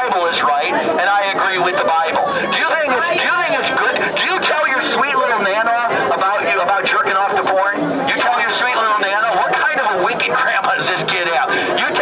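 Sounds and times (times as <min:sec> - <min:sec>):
man talking through loudspeaker: 0:00.0 - 0:12.0
overlapping voices: 0:00.0 - 0:12.0.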